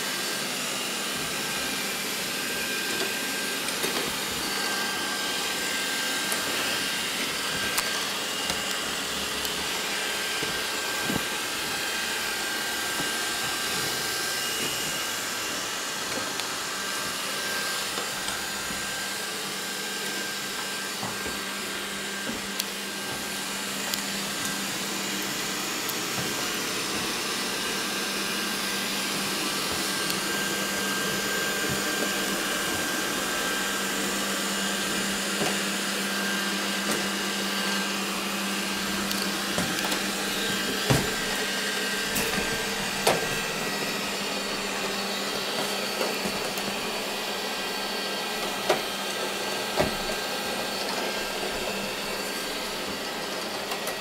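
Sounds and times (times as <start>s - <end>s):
robot vacuum whirring: 0.0s - 54.0s.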